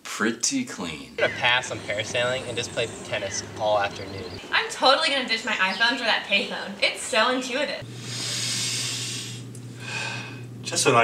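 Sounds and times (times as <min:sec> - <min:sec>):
steady low hum: 0:00.9 - 0:11.0
long breathy exhale: 0:08.0 - 0:10.5.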